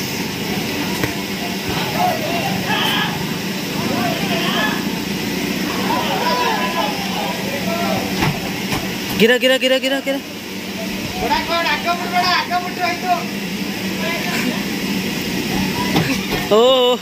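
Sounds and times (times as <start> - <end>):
machine hum: 0.0 - 17.0
people calling out and talking: 0.4 - 17.0.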